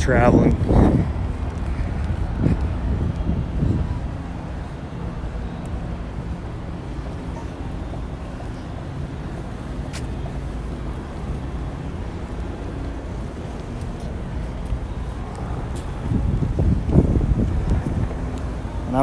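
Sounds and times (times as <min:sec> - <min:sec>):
outdoor ambience: 0:00.0 - 0:19.0
wind rumble on microphone: 0:00.0 - 0:19.0.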